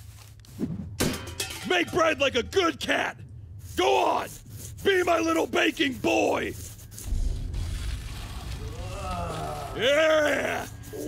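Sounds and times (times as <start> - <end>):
low rumbling drone: 7.0 - 9.9.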